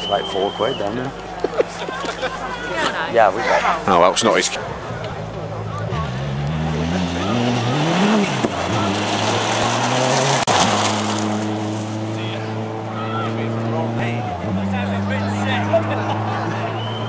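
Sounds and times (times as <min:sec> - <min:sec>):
car passing with rush of noise: 0:01.1 - 0:17.0
rally car engine revving: 0:04.6 - 0:17.0.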